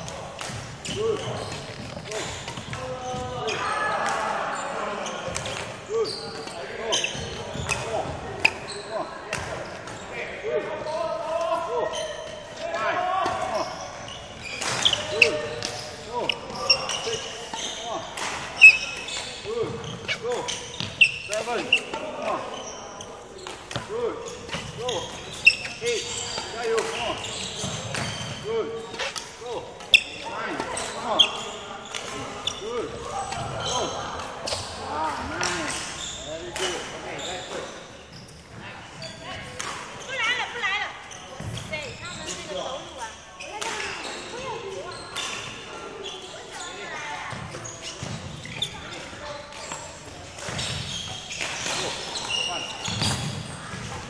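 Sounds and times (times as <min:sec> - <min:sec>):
sneakers squeaking on floor: 0:00.0 - 0:54.0.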